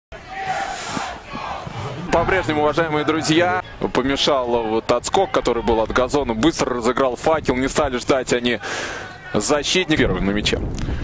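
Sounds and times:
crowd shouting: 0.1 - 6.2.

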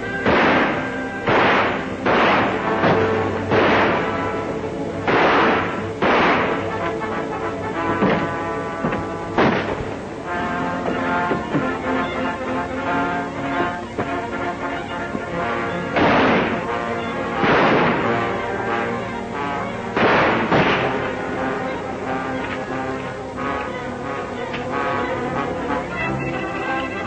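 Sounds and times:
orchestral film score: 0.0 - 27.0.

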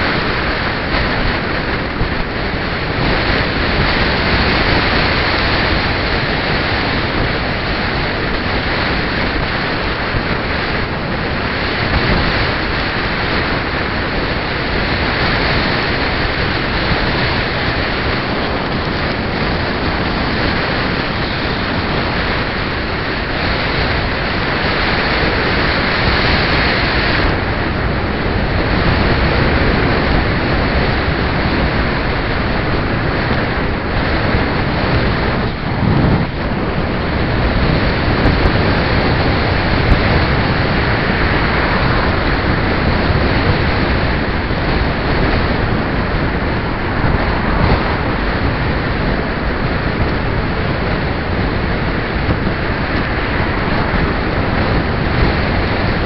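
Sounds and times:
passing traffic: 0.0 - 56.0
wind rushing over microphone: 0.0 - 56.0.

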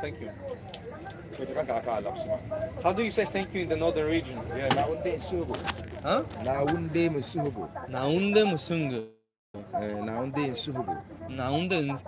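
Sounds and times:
people talking: 0.0 - 12.0.

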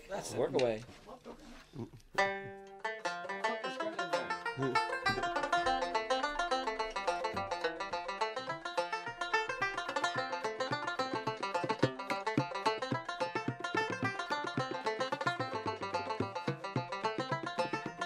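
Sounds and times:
banjo playing fast reels: 2.1 - 18.0.

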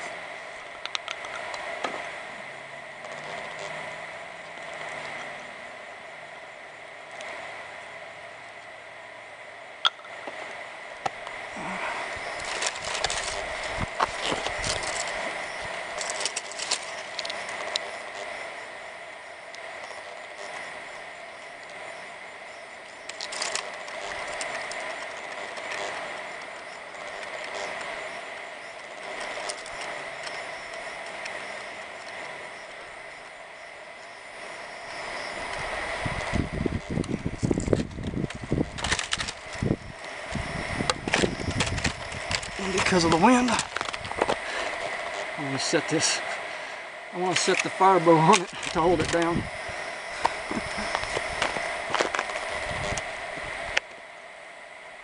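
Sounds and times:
steady high hum: 0.0 - 55.0
dry frond crackling and rustling: 10.3 - 21.9, 22.5 - 33.5, 34.9 - 53.7.

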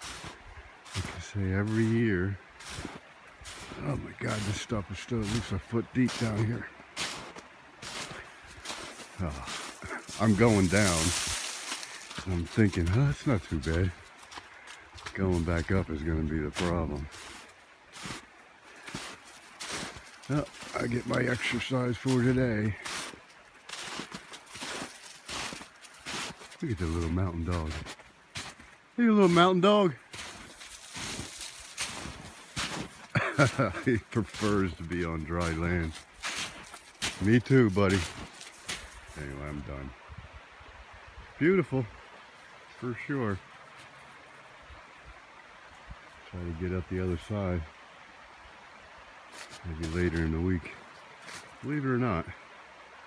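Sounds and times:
footsteps in deep snow: 0.0 - 39.9, 49.3 - 51.6
creek rushing: 0.0 - 53.0.

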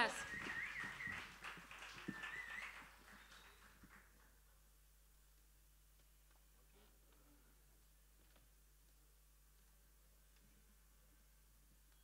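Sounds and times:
wavering whistles: 0.2 - 1.3, 2.0 - 3.8.

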